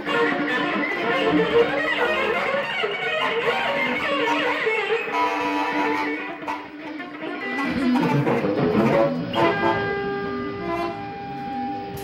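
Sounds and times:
long held instrumental note: 0.0s - 12.0s
higher held note: 7.6s - 11.2s.

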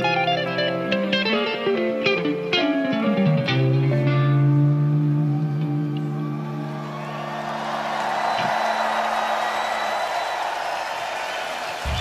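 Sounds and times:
held electric guitar notes: 0.0s - 7.0s
crowd noise: 4.0s - 12.0s.

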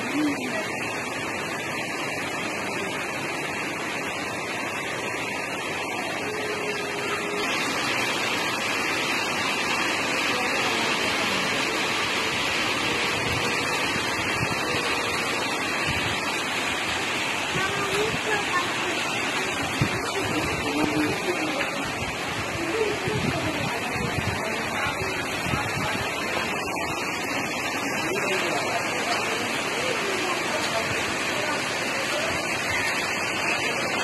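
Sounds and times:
water rushing: 0.0s - 34.0s.

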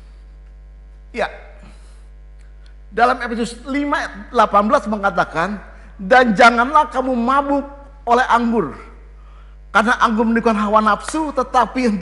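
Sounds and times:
electrical mains hum: 0.0s - 12.0s
person speaking: 1.1s - 1.8s, 2.9s - 12.0s.

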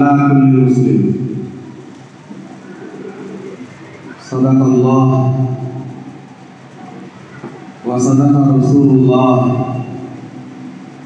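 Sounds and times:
man chanting into microphone: 0.0s - 1.4s, 4.2s - 5.8s, 7.9s - 10.0s.

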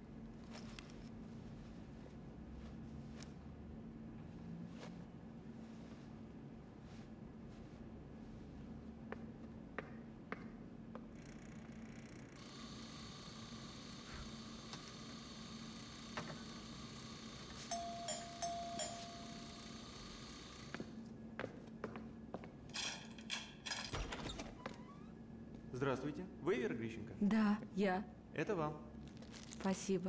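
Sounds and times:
background hum: 0.0s - 30.0s
electric doorbell buzzing: 17.6s - 20.7s.

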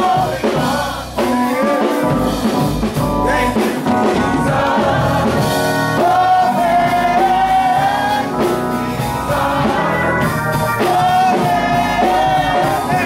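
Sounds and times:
congregation singing a gospel song: 0.0s - 13.0s.

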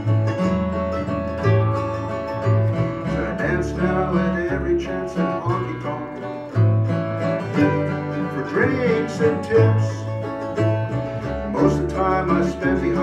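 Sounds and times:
small plucked string instrument: 0.0s - 13.0s
strummed acoustic guitar: 0.0s - 13.0s
upright bass plucking: 0.0s - 13.0s.

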